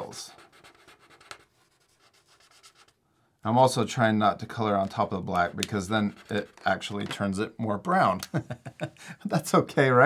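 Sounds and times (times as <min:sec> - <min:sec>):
marker scratching on paper: 0:00.0 - 0:03.0, 0:05.4 - 0:06.8.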